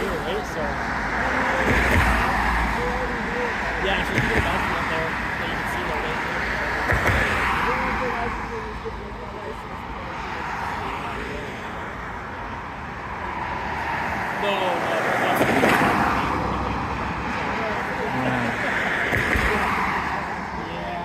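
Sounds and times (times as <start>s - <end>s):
cars passing: 0.0s - 21.0s.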